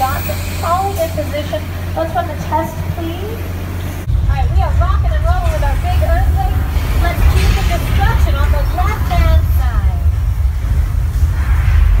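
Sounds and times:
voices calling out: 0.0s - 10.1s
earthquake effect rumble: 0.0s - 12.0s.

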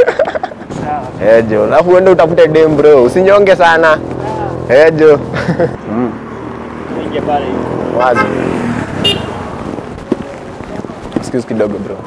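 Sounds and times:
men's voices: 0.0s - 12.0s
roadside traffic noise: 0.0s - 12.0s.

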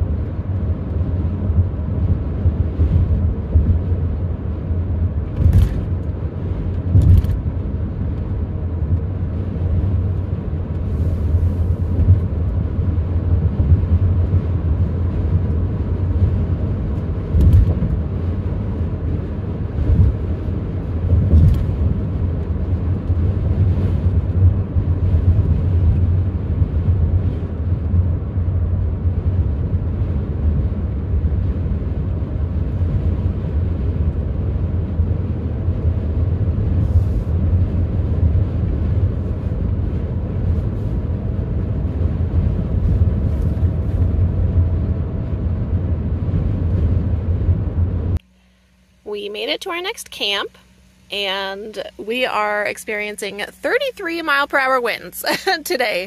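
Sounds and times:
road and engine rumble in car: 0.0s - 56.0s.

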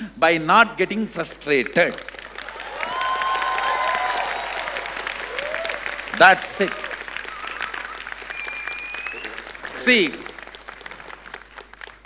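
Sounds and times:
audience applauding: 1.6s - 12.0s.

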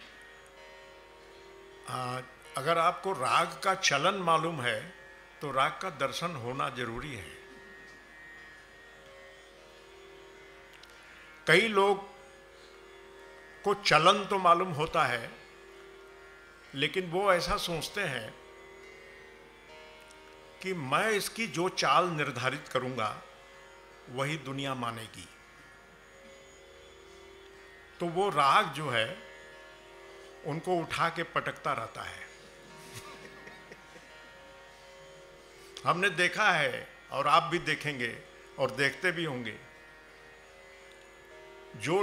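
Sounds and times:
tanpura drone: 0.0s - 42.0s.

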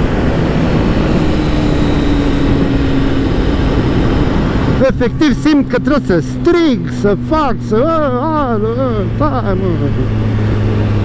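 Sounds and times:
motorcycle engine cruising: 0.0s - 11.0s
wind rushing across microphone: 0.0s - 11.0s.

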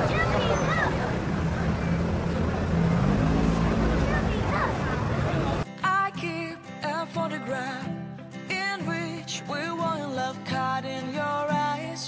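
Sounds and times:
faint voices: 0.0s - 5.6s
crowd noise: 0.0s - 5.7s
traffic noise: 0.0s - 5.7s.

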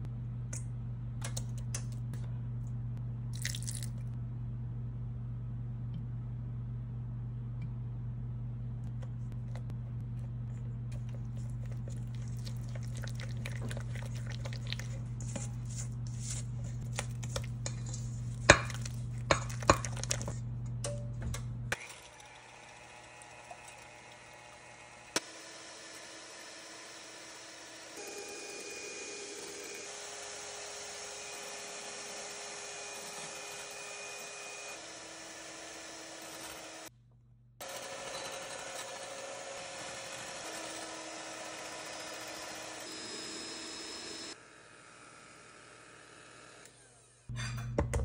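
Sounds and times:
electric hand mixer whirring: 21.8s - 36.9s, 37.6s - 47.3s.

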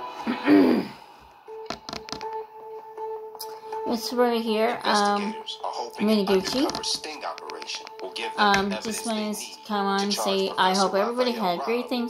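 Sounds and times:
light taps on a phone: 1.7s - 2.4s, 6.4s - 9.1s.

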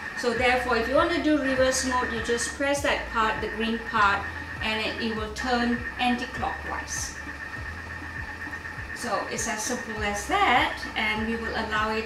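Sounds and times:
faint high whine: 0.0s - 12.0s
kitchen appliance humming: 0.0s - 12.0s.

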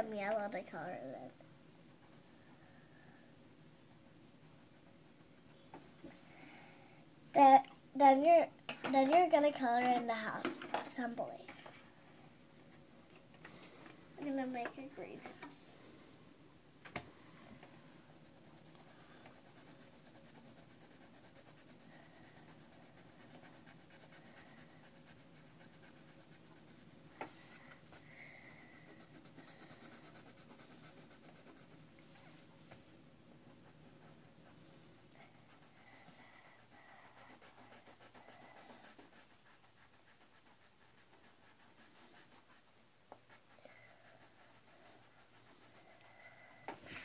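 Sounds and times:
pencil scratching on paper: 0.0s - 5.6s, 18.0s - 32.5s, 33.4s - 46.8s.

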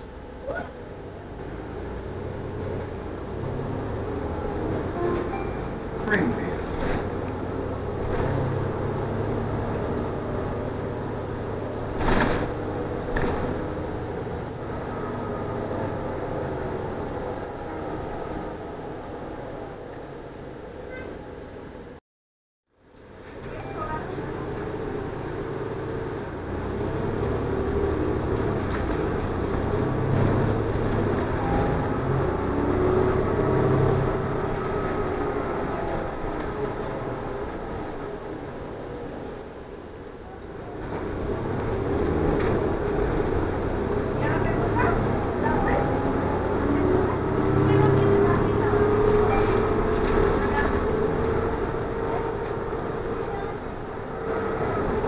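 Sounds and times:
bus engine drone: 0.0s - 22.0s, 22.7s - 55.0s
road noise: 0.0s - 22.0s, 22.7s - 55.0s.

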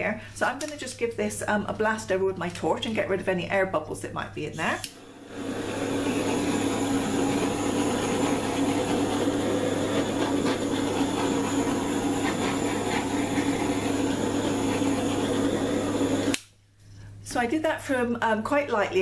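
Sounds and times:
torch flame hissing: 4.9s - 16.5s.

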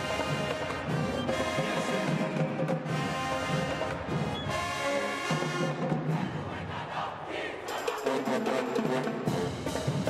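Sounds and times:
arena crowd noise: 0.0s - 10.0s
sharp percussion hits: 7.6s - 10.0s.

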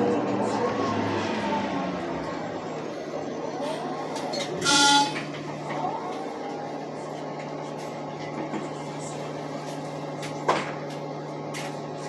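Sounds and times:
bus engine hum: 0.0s - 12.0s.

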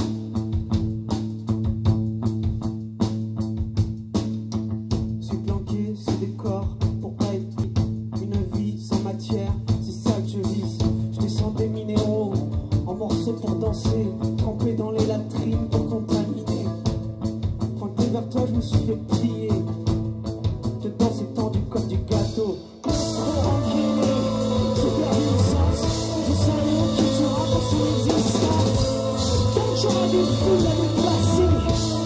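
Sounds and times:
rock band playing: 0.0s - 32.0s
person singing: 20.9s - 32.0s.

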